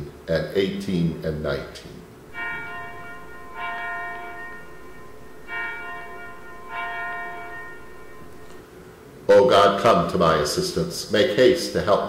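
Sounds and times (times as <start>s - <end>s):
bell ringing: 2.3s - 8.9s.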